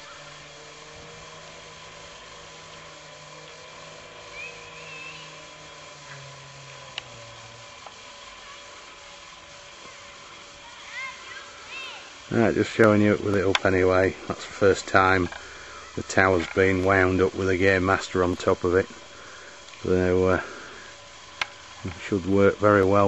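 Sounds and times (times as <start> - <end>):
low motor-like hum: 0.0 - 23.0
faint chirps: 4.3 - 5.4.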